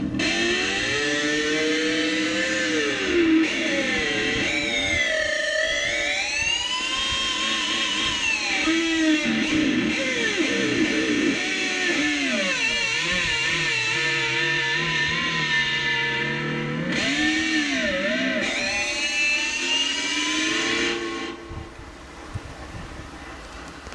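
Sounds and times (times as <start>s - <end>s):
electric guitar lead melody: 0.0s - 22.2s.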